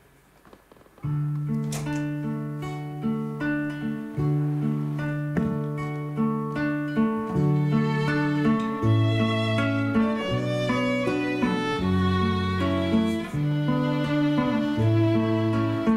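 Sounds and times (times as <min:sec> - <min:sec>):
acoustic guitar picked arpeggio: 0:01.0 - 0:15.9.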